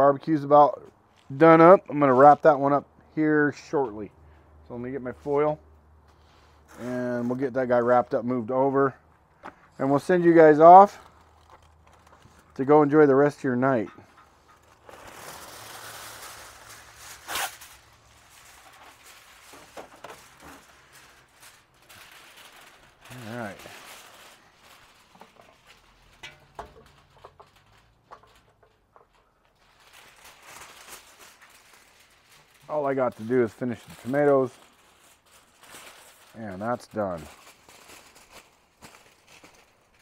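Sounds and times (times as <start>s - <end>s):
clicks and rustles at grill: 13.8s - 23.0s, 23.6s - 32.7s.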